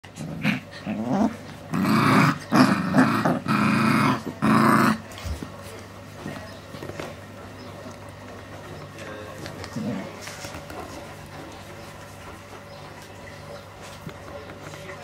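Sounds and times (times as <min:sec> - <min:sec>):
puppies growling and snarling: 0:00.0 - 0:05.5, 0:07.8 - 0:12.7
quiet scuffling: 0:05.0 - 0:15.0.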